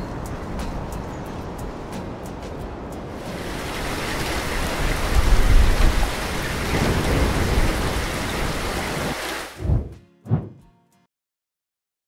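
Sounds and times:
heavy rain: 3.1s - 9.7s
low rumble of thunder: 4.8s - 8.6s.

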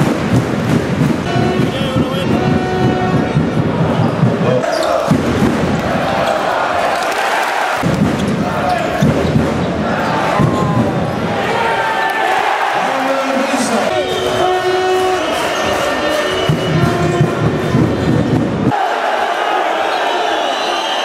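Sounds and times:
crowd noise: 0.0s - 21.0s
basketball bouncing on court: 7.8s - 10.9s.

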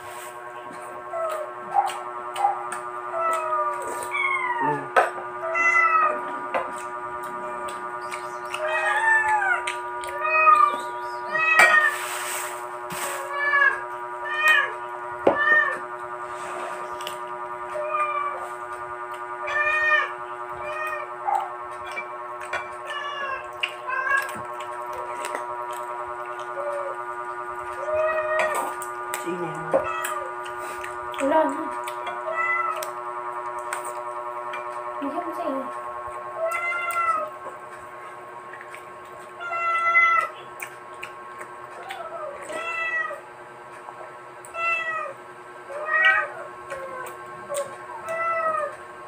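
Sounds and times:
cat meowing: 2.4s - 6.4s, 8.5s - 12.0s, 13.2s - 15.8s, 22.8s - 25.2s, 27.8s - 28.8s, 32.2s - 32.9s, 36.4s - 37.4s, 39.4s - 40.4s, 41.8s - 43.2s.

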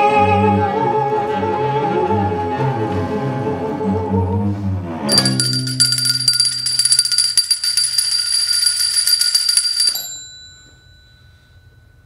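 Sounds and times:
bell ringing rapidly: 5.1s - 11.7s.

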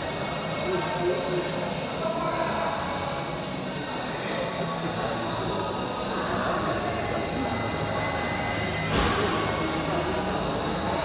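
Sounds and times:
busy indoor hall ambience: 0.0s - 11.0s.

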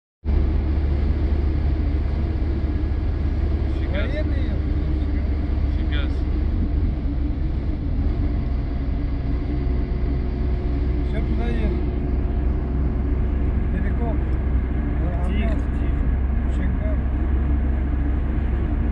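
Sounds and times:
trucks rumbling: 0.2s - 18.9s.

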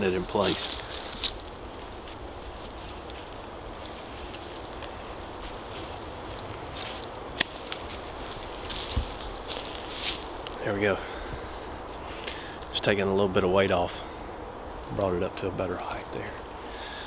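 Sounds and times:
outdoor background: 0.0s - 17.0s.

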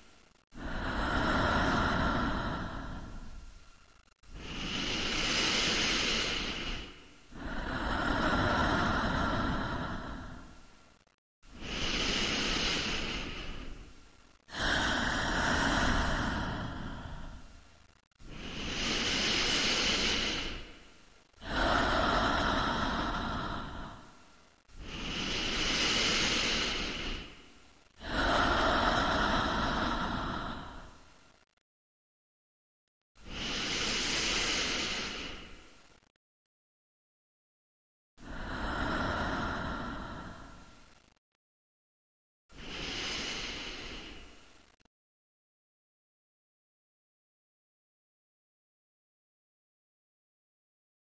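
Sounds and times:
slow deep human breathing: 0.0s - 31.6s, 33.2s - 36.2s, 38.1s - 41.3s, 42.5s - 44.9s.

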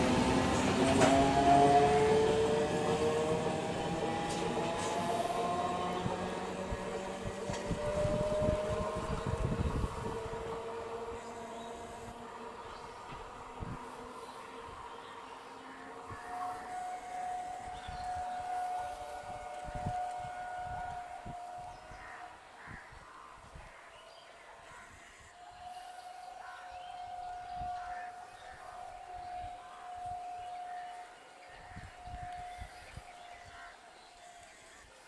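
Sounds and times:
train horn blasts: 0.0s - 14.3s, 15.7s - 22.4s, 25.2s - 33.7s.

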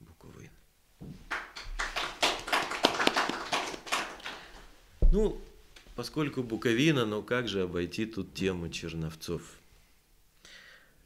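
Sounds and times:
audience applauding: 1.3s - 4.7s.

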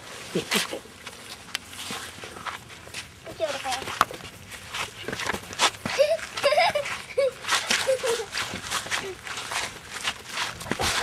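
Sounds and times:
footsteps on grass and gravel: 1.2s - 11.0s
person's voice: 3.3s - 3.9s.

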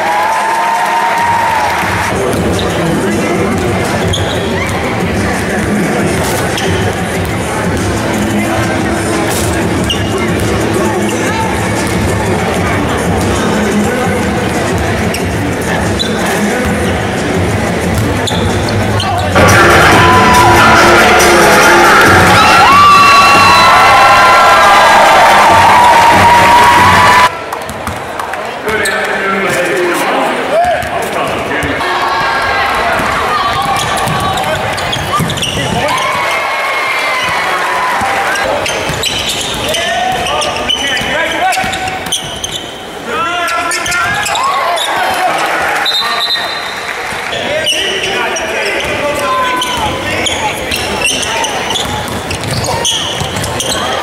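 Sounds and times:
sneaker squeaks: 2.3s - 3.0s, 3.6s - 12.3s, 14.5s - 16.9s, 17.8s - 19.4s, 28.7s - 29.0s, 33.0s - 36.4s, 37.2s - 45.2s, 45.8s - 54.0s.

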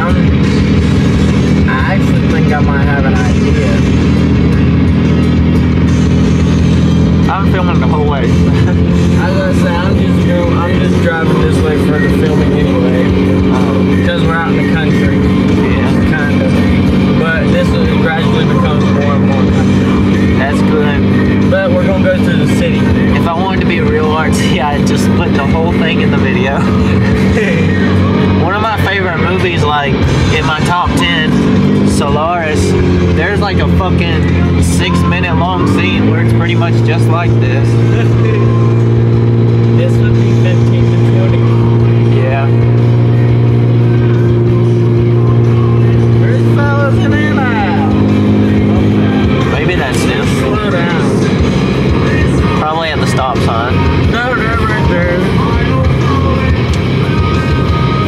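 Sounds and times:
car running and road noise: 0.0s - 58.0s
song on car stereo: 0.0s - 58.0s.

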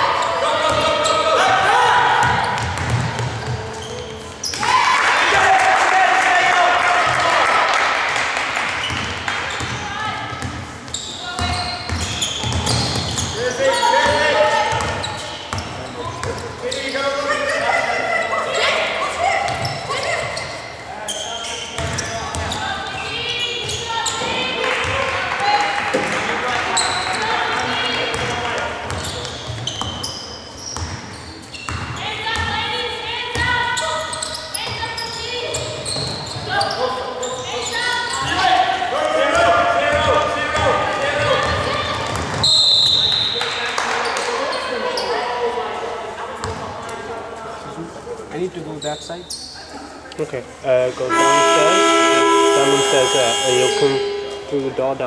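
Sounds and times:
people shouting: 0.0s - 2.5s, 4.6s - 7.7s
basketball bouncing on court: 0.6s - 1.1s, 2.2s - 4.1s, 8.8s - 13.4s, 14.0s - 16.5s, 19.5s - 20.5s, 21.8s - 26.2s, 26.9s - 32.7s, 33.3s - 33.8s, 39.3s - 42.5s, 46.4s - 46.7s
loud held tone: 51.1s - 54.9s.

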